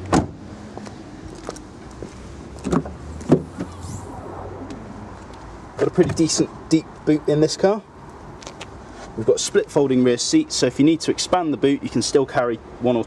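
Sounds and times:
tailgate clunks: 0.0s - 0.4s
car door shutting: 0.1s - 0.4s.

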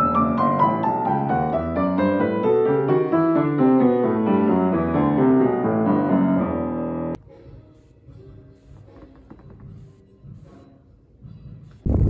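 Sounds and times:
piano fast passages: 0.0s - 7.2s.

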